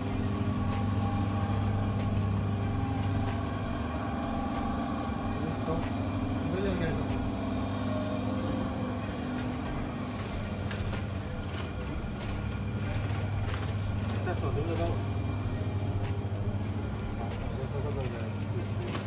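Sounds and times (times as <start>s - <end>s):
refrigeration units humming: 0.0s - 19.0s.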